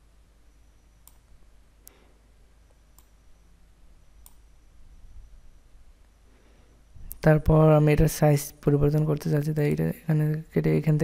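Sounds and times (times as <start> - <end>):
low room hum: 0.0 - 11.0
computer mouse clicking: 1.0 - 2.0, 2.9 - 3.2, 4.2 - 4.4.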